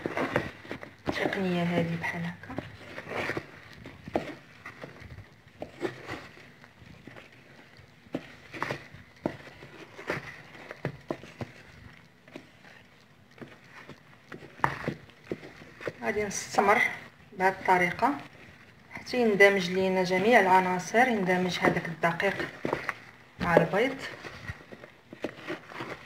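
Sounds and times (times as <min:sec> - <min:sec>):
spatula scraping batter in dish: 0:00.0 - 0:26.0.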